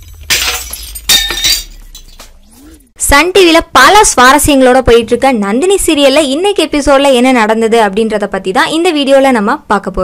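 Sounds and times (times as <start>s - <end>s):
glass shattering: 0.0s - 2.5s.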